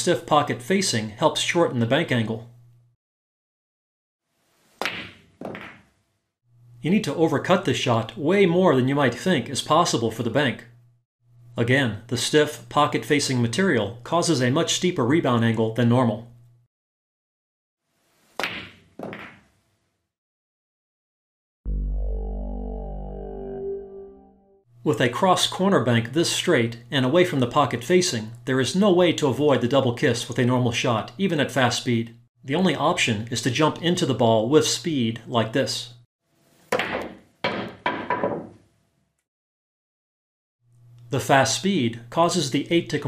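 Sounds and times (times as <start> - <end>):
ball knocking cushion: 4.8 - 5.9, 18.4 - 19.4
cue ball cracking into ball: 4.8 - 5.9, 18.4 - 19.5, 36.7 - 38.6
pool balls clacking: 4.8 - 5.9.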